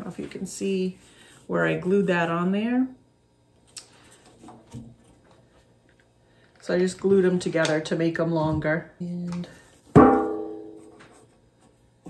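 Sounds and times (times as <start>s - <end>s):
knock on metal tin ringing: 10.0s - 10.8s.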